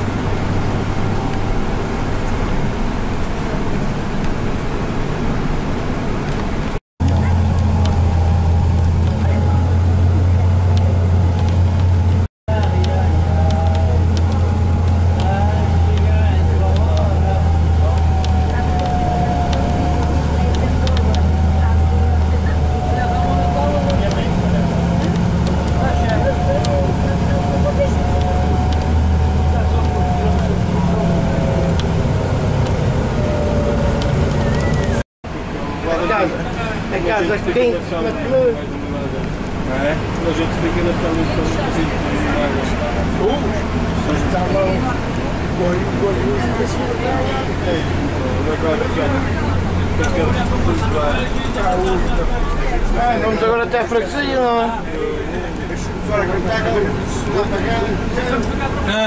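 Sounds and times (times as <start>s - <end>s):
bus engine drone: 0.0s - 59.0s
drivetrain whine: 0.0s - 59.0s.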